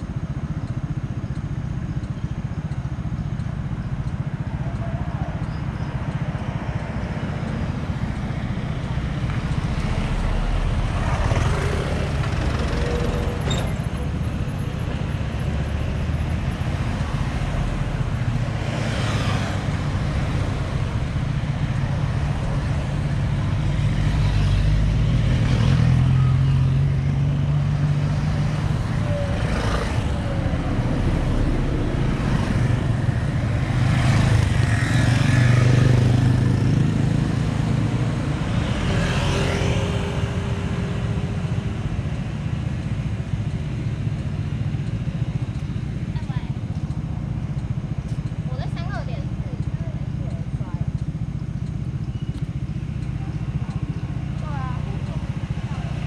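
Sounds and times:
cars and motorcycles driving past: 0.0s - 56.0s
low engine hum: 0.0s - 56.0s.

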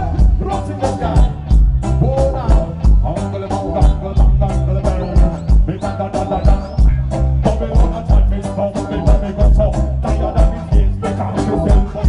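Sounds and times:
live reggae band playing: 0.0s - 12.0s
person singing into microphone: 0.0s - 12.0s.

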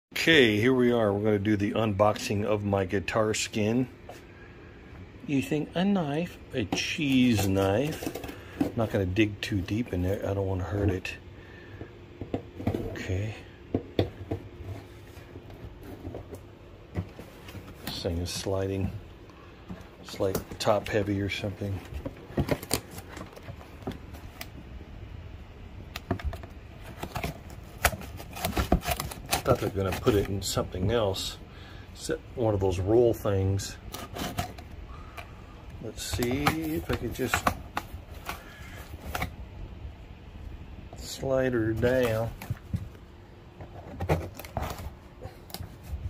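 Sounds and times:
steady low hum: 0.1s - 46.0s
cardboard scraping: 12.5s - 24.4s, 26.8s - 31.2s, 33.8s - 34.7s, 35.9s - 39.4s, 43.6s - 46.0s.

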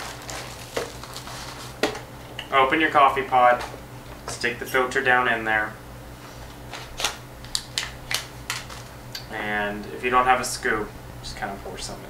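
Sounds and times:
foil seal peeling crackles: 0.0s - 1.9s, 6.7s - 8.9s.

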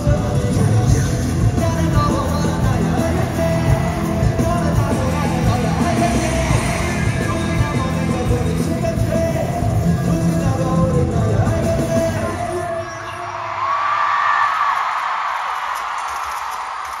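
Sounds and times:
bass-heavy concert music: 0.0s - 13.6s
crowd screaming and cheering: 0.0s - 17.0s.

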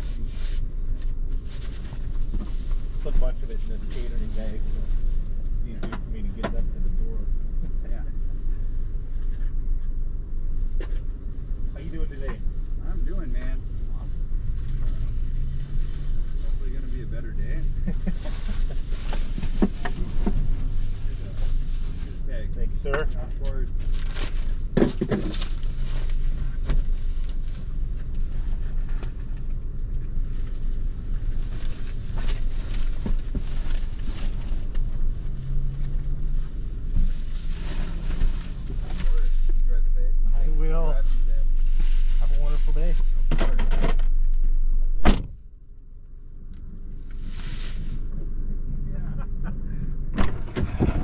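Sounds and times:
outdoor rumble: 0.0s - 51.0s
grocery bags rustling: 16.4s - 22.2s
car door shutting: 45.0s - 45.4s, 50.1s - 51.0s.

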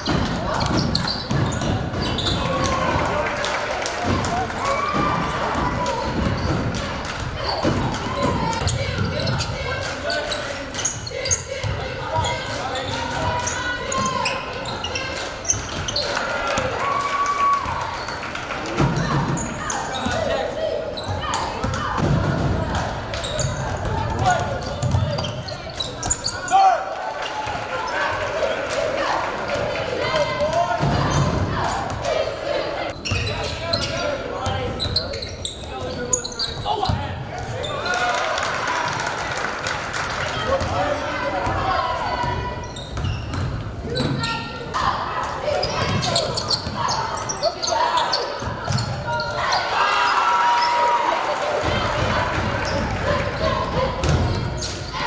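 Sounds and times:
people calling out and talking: 0.0s - 55.0s.

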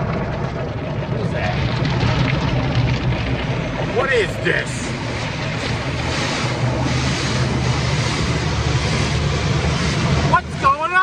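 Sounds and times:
low machine hum: 0.0s - 11.0s
car wash water spray: 1.3s - 11.0s.

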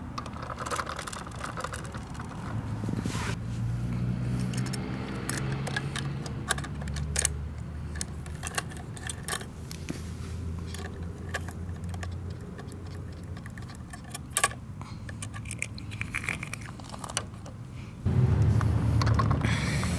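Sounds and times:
plastic toy clicks and rattles: 0.0s - 2.6s, 4.4s - 9.5s, 10.6s - 17.6s
low hum: 18.0s - 19.9s.

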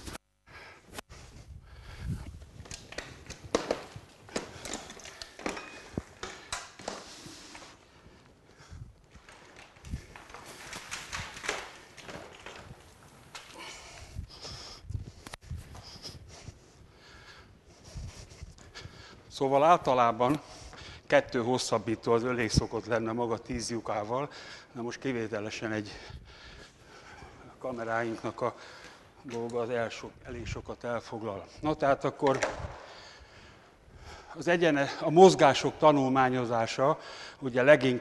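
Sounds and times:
knocks and rustles from handling: 2.6s - 7.7s.

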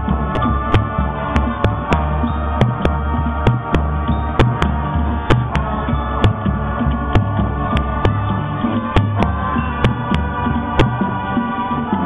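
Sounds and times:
deep pulsing low end: 0.0s - 11.2s
band holding sustained chords: 0.0s - 12.0s.

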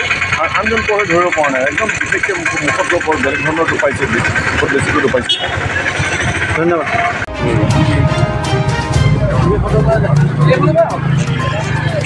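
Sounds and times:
vehicle engine noise: 0.0s - 12.0s
man talking: 0.4s - 5.4s, 6.6s - 8.3s, 9.2s - 12.0s.

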